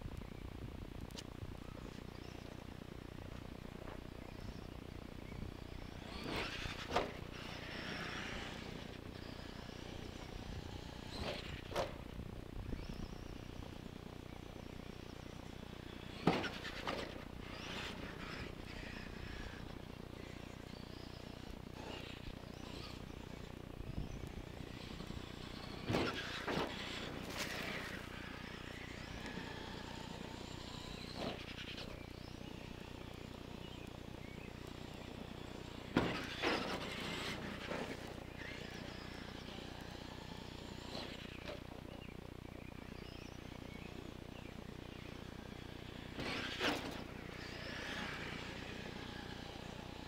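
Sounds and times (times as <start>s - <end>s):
electric motor whine: 0.0s - 50.0s.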